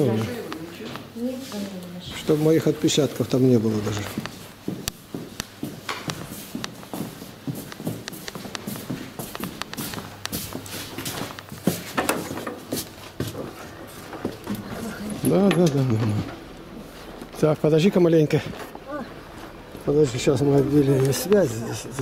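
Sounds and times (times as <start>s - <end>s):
footsteps on hard floor: 3.7s - 15.4s.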